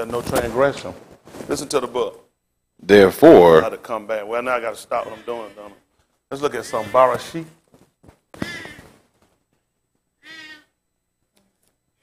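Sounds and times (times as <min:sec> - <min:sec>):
marker squeaking on whiteboard: 0:08.4 - 0:09.0, 0:10.2 - 0:10.7.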